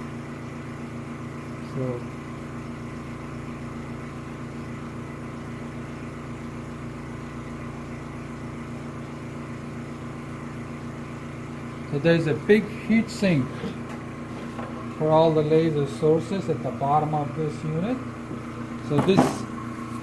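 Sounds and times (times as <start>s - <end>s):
machine hum with fast pulse: 0.0s - 20.0s.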